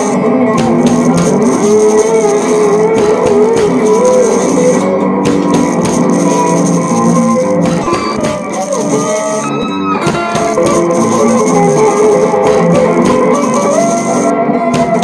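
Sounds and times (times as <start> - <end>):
funky blues instrumental: 0.0 - 15.0
lead guitar bending notes: 0.0 - 15.0.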